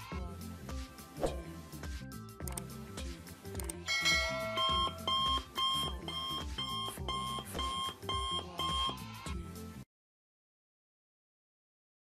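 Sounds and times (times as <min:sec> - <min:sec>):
background music with beat: 0:00.0 - 0:09.8
electronic alarm beeping: 0:04.4 - 0:09.0.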